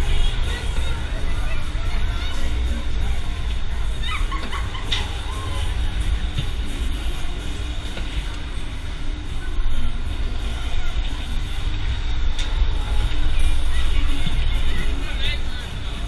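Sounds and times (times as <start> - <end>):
fairground music: 0.0 - 16.0.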